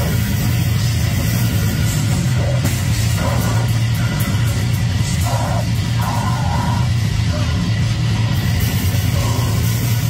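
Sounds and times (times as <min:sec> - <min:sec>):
heavy metal band playing: 0:00.0 - 0:10.0.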